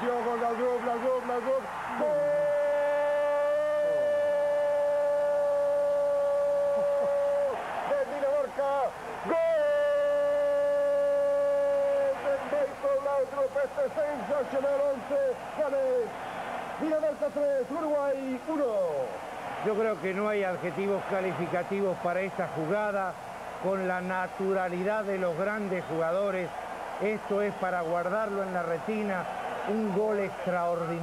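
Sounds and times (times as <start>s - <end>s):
commentator's drawn-out goal cry: 1.4s - 13.4s.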